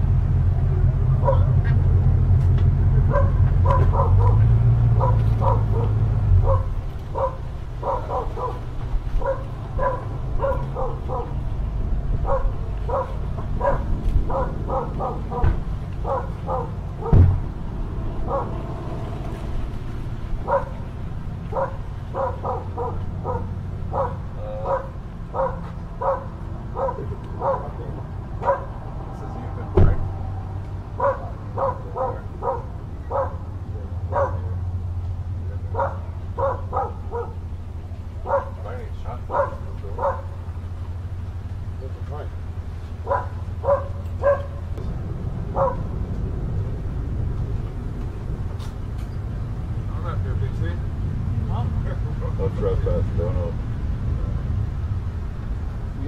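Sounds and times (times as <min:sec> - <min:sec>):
steady low hum: 0:00.0 - 0:56.0
dog barking: 0:01.2 - 0:01.6, 0:03.0 - 0:11.4, 0:12.2 - 0:17.3, 0:18.2 - 0:18.6, 0:20.4 - 0:20.8, 0:21.5 - 0:28.8, 0:31.0 - 0:34.6, 0:35.6 - 0:37.4, 0:38.2 - 0:40.4, 0:43.0 - 0:44.7, 0:45.5 - 0:45.9
sharp knock: 0:17.1 - 0:17.5.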